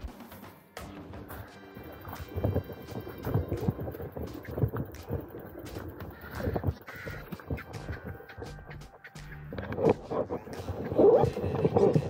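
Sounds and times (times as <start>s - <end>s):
rain ticking: 1.6s - 12.0s.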